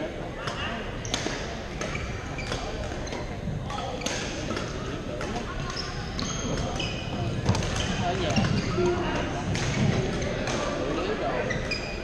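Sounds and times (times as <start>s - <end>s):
sneaker squeaks on court floor: 1.0s - 12.0s
racket hitting shuttlecock: 9.2s - 10.7s.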